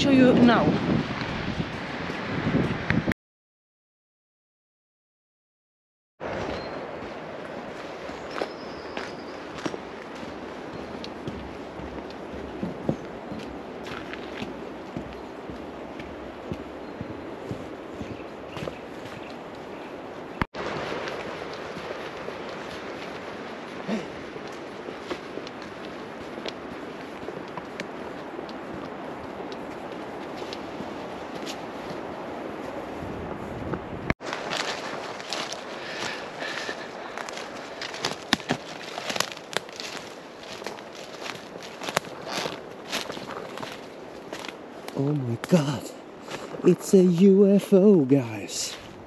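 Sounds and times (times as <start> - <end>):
footsteps on dead leaves: 6.2 - 33.6, 34.2 - 47.4
outdoor background noise: 6.2 - 49.0.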